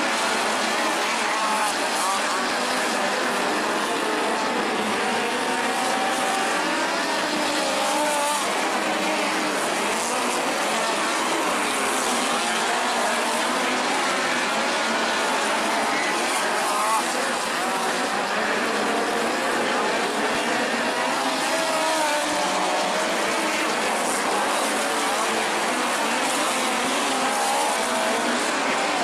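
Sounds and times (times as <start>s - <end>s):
crowd noise: 0.0s - 29.0s
race car engines circling: 0.0s - 29.0s.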